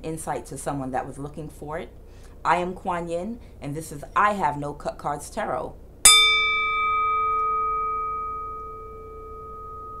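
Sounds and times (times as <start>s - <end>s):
singing bowl ringing: 6.0s - 10.0s.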